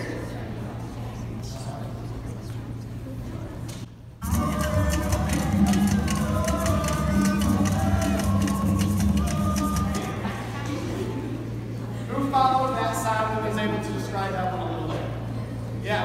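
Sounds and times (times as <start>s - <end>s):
percussion rhythm: 4.2s - 10.5s.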